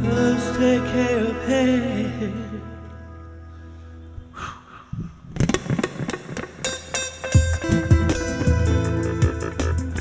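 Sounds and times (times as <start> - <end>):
muted percussive guitar strums: 5.4 - 10.0
open ringing guitar chords: 6.6 - 10.0.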